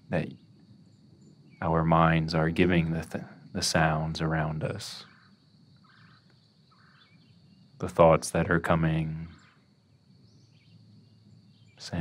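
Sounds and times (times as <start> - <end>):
faint short bird calls: 5.0 - 9.6.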